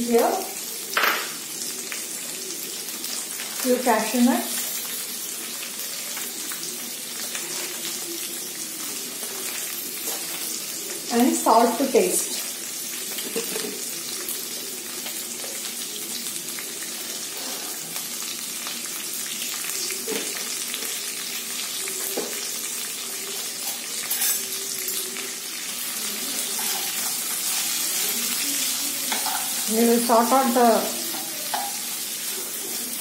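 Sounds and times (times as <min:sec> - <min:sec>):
food sizzling in hot oil: 0:00.0 - 0:33.0.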